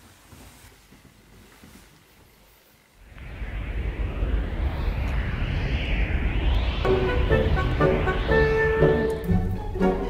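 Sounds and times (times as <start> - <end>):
deep rumbling noise: 3.0 - 10.0.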